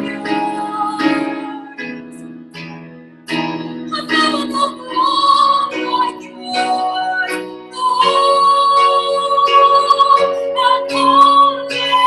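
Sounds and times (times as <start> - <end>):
woman singing worship song: 0.0 - 2.0, 3.9 - 12.0
instrumental accompaniment: 0.0 - 12.0.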